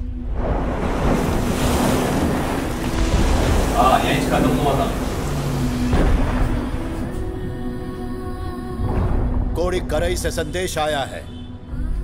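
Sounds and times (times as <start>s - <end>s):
ocean waves surging: 0.0s - 7.9s
wind: 0.0s - 12.0s.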